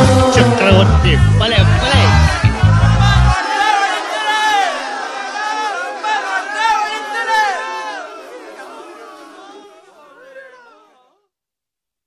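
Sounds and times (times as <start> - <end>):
heavy bass beat: 0.0 - 3.4
men's voices calling together: 0.0 - 11.0.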